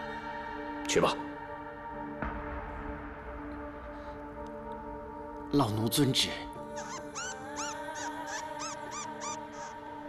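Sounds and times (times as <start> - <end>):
bird chirping: 6.8 - 9.8.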